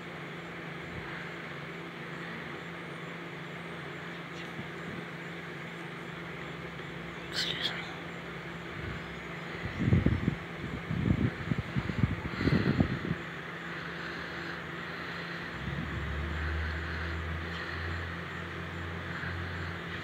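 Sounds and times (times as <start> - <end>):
distant vehicle rumbles: 0.0 - 20.0
low engine drone: 0.0 - 20.0.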